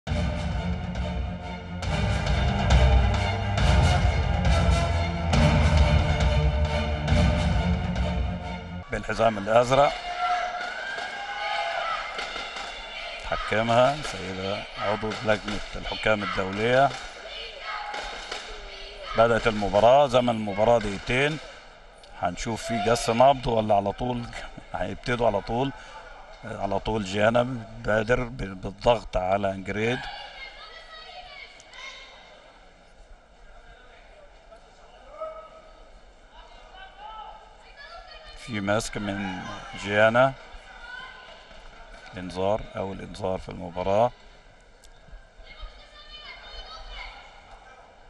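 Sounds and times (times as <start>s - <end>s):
murmur of arena crowd: 0.1s - 48.0s
faint voices in sports hall: 8.7s - 48.0s.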